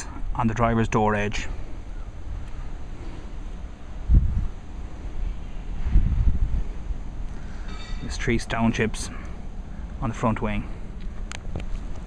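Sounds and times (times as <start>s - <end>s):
wind buffeting microphone: 1.4s - 12.0s.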